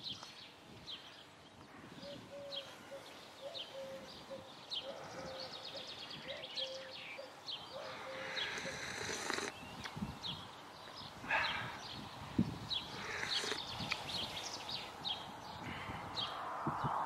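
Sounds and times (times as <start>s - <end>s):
small bird chirping: 2.1s - 15.3s.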